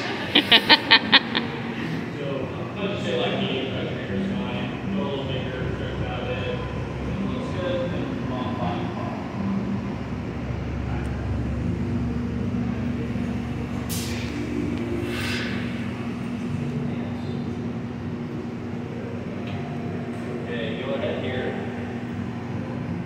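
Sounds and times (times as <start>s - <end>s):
extraction fans: 0.0s - 23.0s
furnace burners roaring: 0.0s - 23.0s
steady hum: 0.0s - 23.0s
brief hisses: 13.9s - 14.4s, 15.0s - 15.8s.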